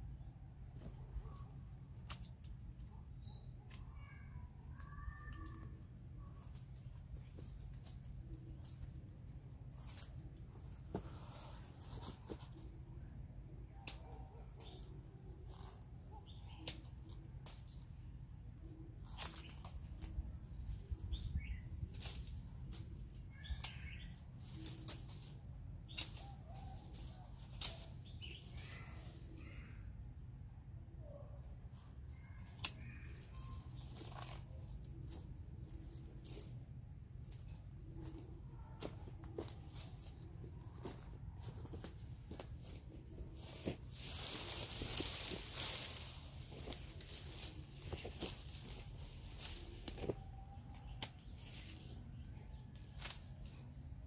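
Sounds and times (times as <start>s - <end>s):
faint bird chirps: 0.0s - 2.0s, 2.6s - 9.2s, 10.0s - 41.8s, 42.6s - 54.0s
leaves and branches rustling: 0.2s - 30.0s, 31.6s - 54.0s.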